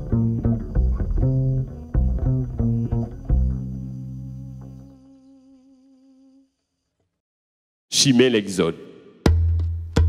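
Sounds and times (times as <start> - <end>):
double bass notes: 0.0 - 5.0
person's voice: 7.9 - 8.8.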